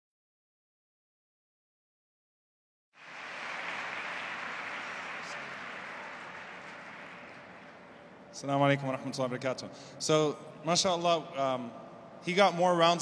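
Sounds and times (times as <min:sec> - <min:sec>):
large audience applause: 0:03.0 - 0:08.2.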